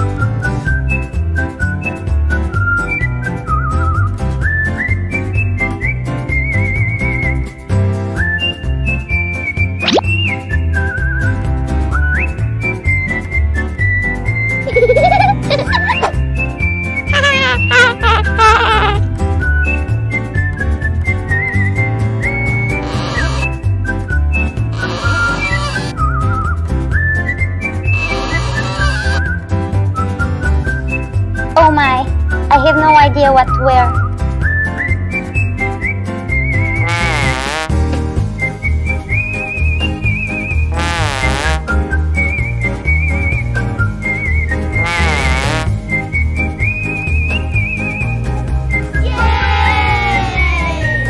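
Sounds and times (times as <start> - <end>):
whistled melody over bouncy beat: 0.0 - 18.4, 19.0 - 51.0
pulsing bass beat: 36.8 - 37.9, 40.7 - 41.8, 44.8 - 45.8.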